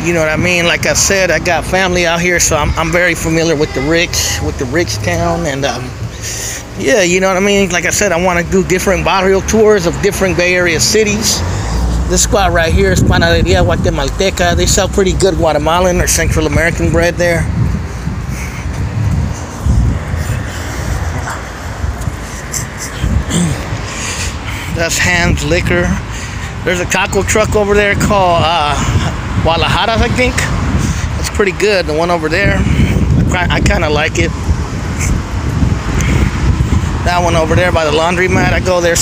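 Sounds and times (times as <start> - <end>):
low street rumble: 0.0 - 39.0
wind buffeting microphone: 0.0 - 39.0.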